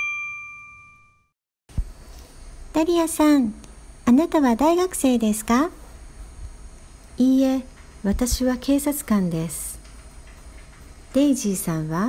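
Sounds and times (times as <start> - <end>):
bell-like ding: 0.0 - 1.3.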